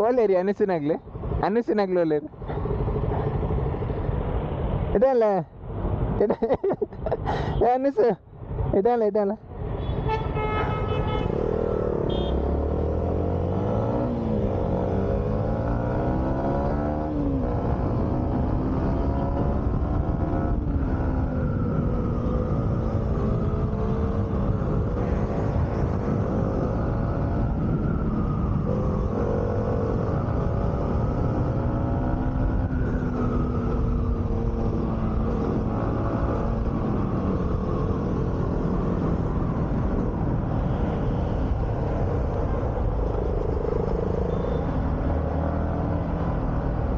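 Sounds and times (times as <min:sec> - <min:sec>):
road noise: 0:00.0 - 0:46.9
motorcycle engine accelerating: 0:11.5 - 0:39.6.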